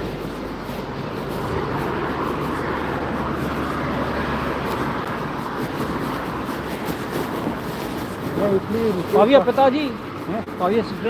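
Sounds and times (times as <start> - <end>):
passing road traffic: 0.0 - 11.0.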